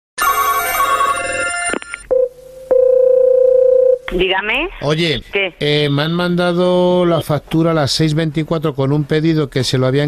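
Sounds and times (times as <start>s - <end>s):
steady telephone line tone: 0.2s - 4.0s
telephone ringing: 0.2s - 4.0s.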